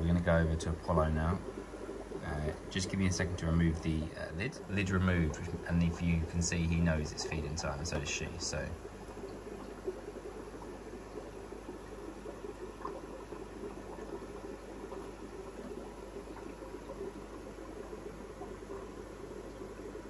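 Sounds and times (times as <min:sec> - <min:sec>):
aquarium water bubbling: 0:00.0 - 0:20.0
faint low hum: 0:00.0 - 0:20.0.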